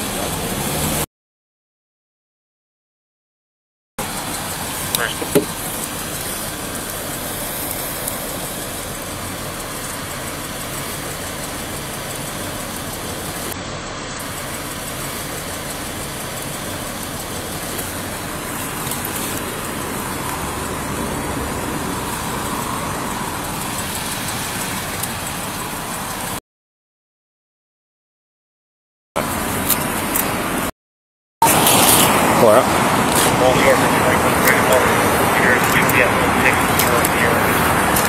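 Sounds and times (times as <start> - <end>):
car idling: 0.0 - 1.0, 4.0 - 26.4, 29.2 - 30.7, 31.4 - 38.0
traffic: 0.0 - 1.1, 4.0 - 26.4, 29.2 - 30.7, 31.4 - 38.0.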